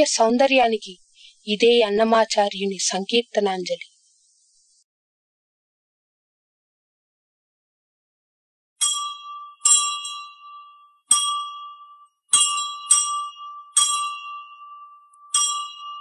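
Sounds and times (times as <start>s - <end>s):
temple bell ringing: 8.8s - 16.0s.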